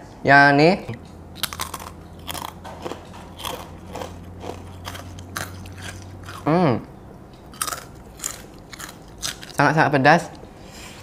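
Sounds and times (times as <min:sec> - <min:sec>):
crisp cracker crunching: 0:01.4 - 0:06.4, 0:07.5 - 0:09.7.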